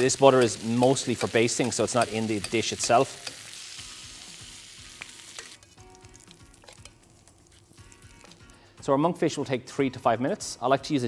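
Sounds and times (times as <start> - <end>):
fish sizzling in butter: 0.0 - 8.7
soft background music: 0.0 - 11.0.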